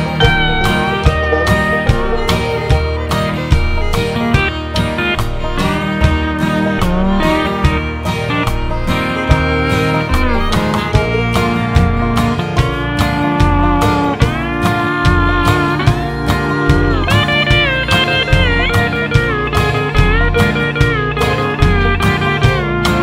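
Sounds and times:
steady drum beat: 0.0 - 23.0
steel guitar sliding notes: 0.0 - 23.0
strummed acoustic guitar: 0.0 - 23.0
upright bass: 0.0 - 23.0.

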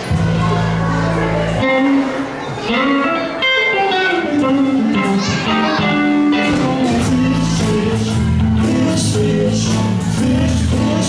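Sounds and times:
electric guitar sliding notes: 0.0 - 11.0
live band music: 0.0 - 11.0.

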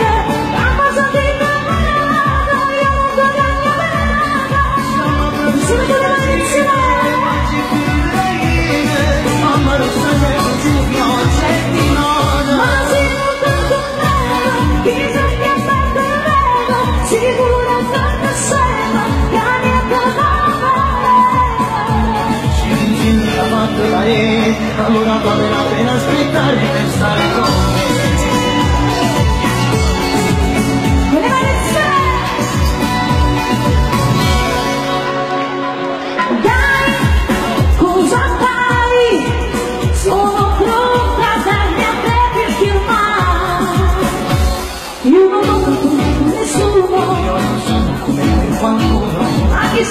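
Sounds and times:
woman singing into a microphone: 0.0 - 34.9, 36.0 - 49.9
band playing pop music: 0.0 - 49.9.

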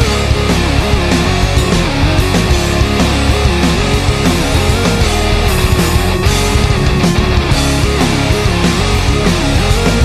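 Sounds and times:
pop punk band playing: 0.0 - 10.0.

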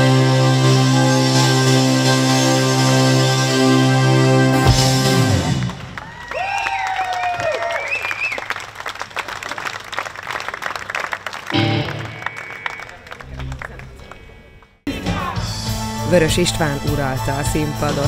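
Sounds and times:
audience applauding and cheering: 0.2 - 2.8, 4.7 - 15.5
long drawn-out shout: 6.0 - 8.0.

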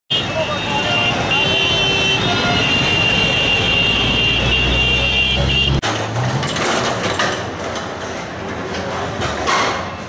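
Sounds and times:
traffic noise: 0.1 - 10.0.

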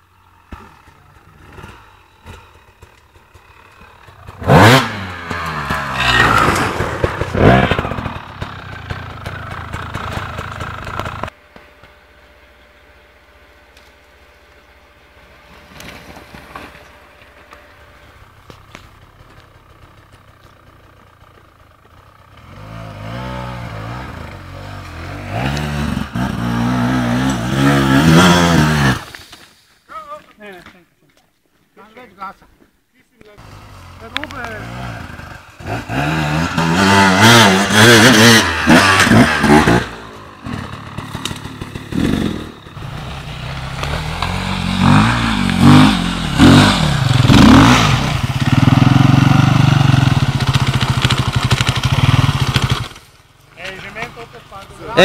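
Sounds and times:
dirt bike engines revving: 0.0 - 29.2, 33.2 - 55.0.

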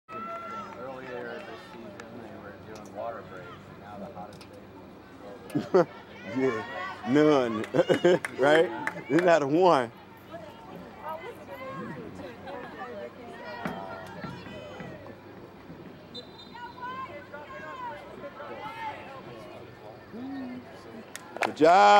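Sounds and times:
distant voices shouting: 0.1 - 3.9, 4.6 - 21.9
people talking and calling out: 0.1 - 21.9.

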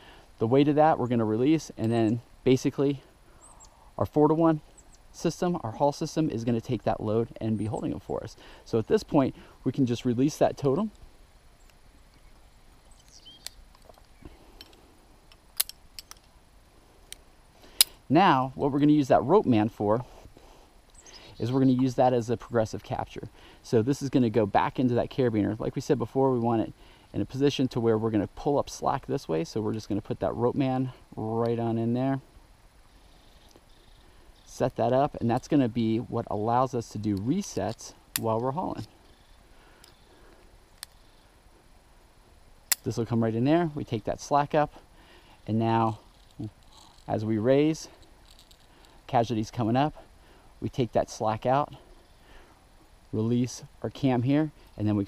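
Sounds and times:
metal carabiners clicking: 12.9 - 16.3, 45.9 - 47.2, 47.9 - 48.7
metal clamp clicking: 15.6 - 16.3.

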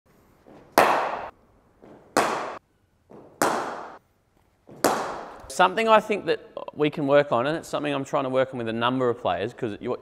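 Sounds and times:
cricket bat hitting ball: 0.6 - 4.0, 4.7 - 5.4.

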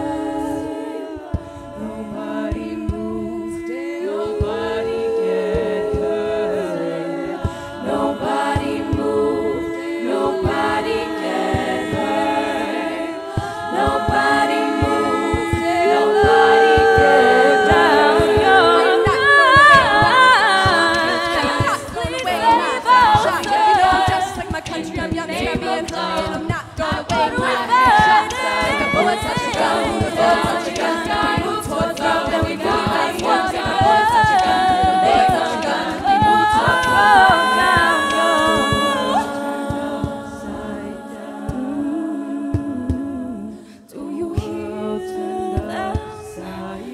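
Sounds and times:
vocal percussion beat: 0.0 - 46.9
women singing in close harmony: 0.0 - 46.9.

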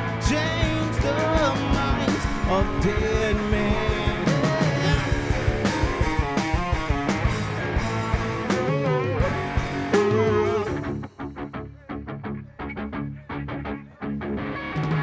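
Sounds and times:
steady drum beat: 0.0 - 11.1
live rock band playing: 0.0 - 15.0.

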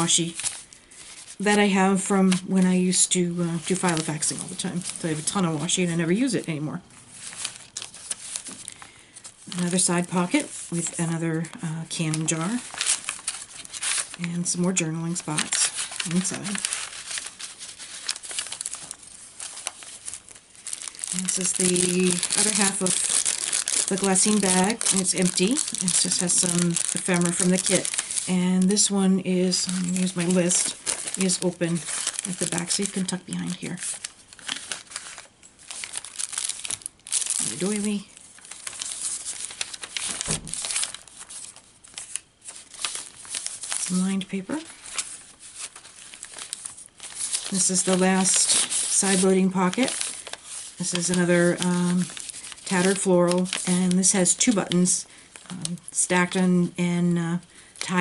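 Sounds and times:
paper rustling and crinkling: 0.0 - 56.4.

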